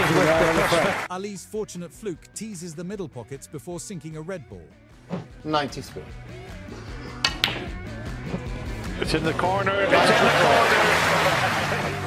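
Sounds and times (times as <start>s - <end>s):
background music: 0.0s - 12.0s
snooker balls clicking: 7.2s - 7.8s.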